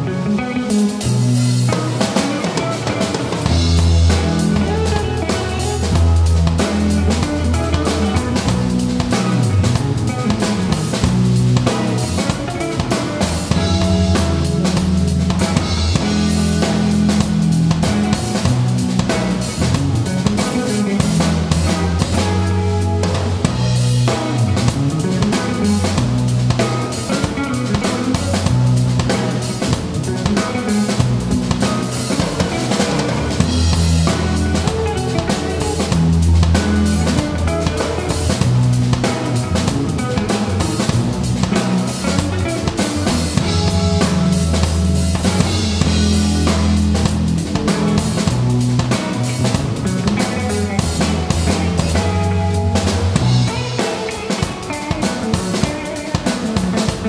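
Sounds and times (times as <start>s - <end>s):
drum kit groove: 0.0s - 57.0s
electric bass: 0.0s - 57.0s
electric guitar: 0.0s - 57.0s.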